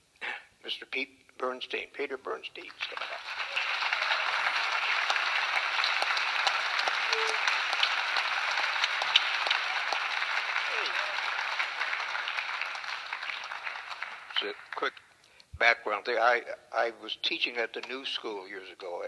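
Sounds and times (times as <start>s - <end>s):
audience applauding: 2.7s - 15.1s.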